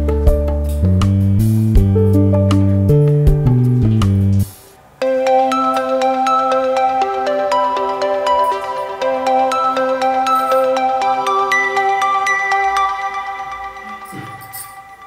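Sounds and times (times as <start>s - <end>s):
ringing struck-note tune: 5.0s - 15.0s.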